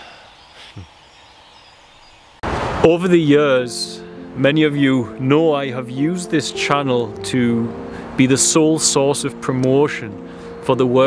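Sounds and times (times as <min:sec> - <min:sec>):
faint woodland ambience: 0:00.0 - 0:02.4
sudden loud burst of noise: 0:02.4 - 0:03.0
man speaking: 0:02.8 - 0:11.0.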